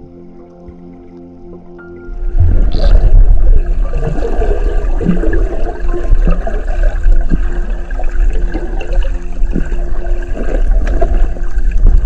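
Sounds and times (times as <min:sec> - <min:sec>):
underwater water rushing: 0:02.1 - 0:12.0
short gurgles: 0:02.4 - 0:05.8.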